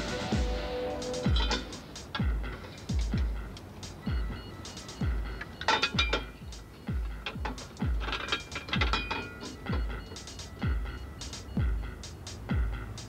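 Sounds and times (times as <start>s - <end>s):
deep kick drum: 0.0s - 5.4s, 6.0s - 8.1s, 9.7s - 12.9s
clattering metallic percussion: 0.0s - 13.0s.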